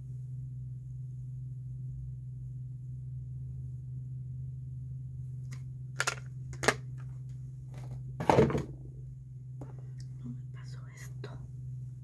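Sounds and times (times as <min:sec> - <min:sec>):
steady low hum: 0:00.0 - 0:12.0
woman whispering: 0:10.0 - 0:11.6.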